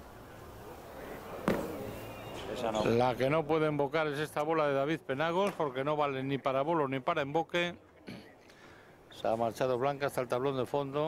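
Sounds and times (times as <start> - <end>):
low murmur of hall: 0.0 - 11.0.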